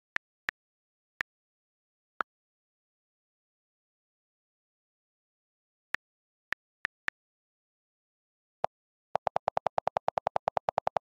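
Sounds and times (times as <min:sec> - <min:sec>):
on-screen keyboard clicks: 0:09.2 - 0:11.0.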